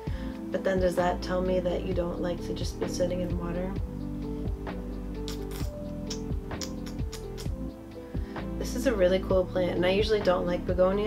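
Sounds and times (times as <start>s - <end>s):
music with held tones and beat: 0.0s - 11.0s.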